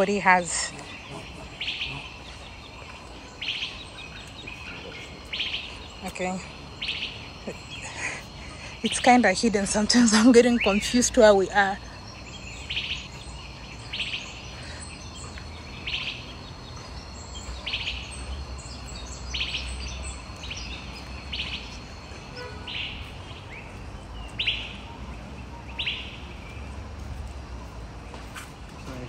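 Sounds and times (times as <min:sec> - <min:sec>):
bird chirping: 0:00.0 - 0:29.0.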